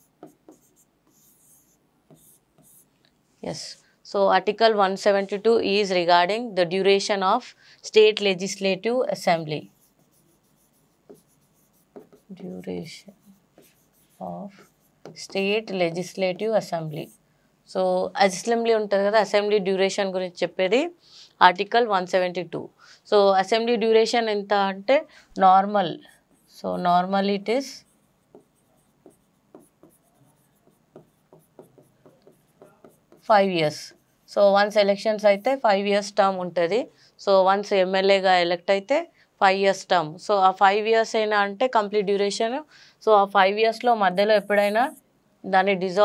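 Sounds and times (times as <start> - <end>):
pen scratching on a board: 0.0 - 2.9, 9.6 - 17.2, 27.6 - 35.6.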